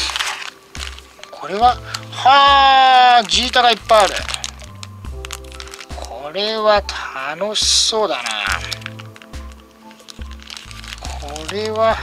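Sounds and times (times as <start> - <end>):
background music: 0.0 - 12.0
plastic bag crinkling: 0.0 - 12.0.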